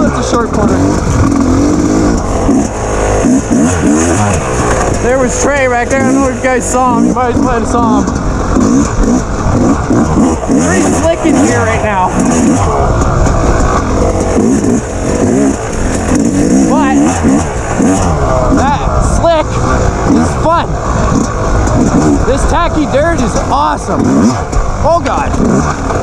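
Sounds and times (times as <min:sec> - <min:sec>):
dirt bike engine revving: 0:00.0 - 0:26.0.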